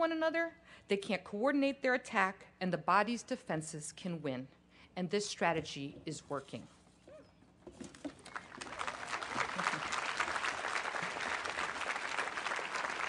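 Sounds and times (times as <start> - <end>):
audience applauding: 8.2 - 13.0.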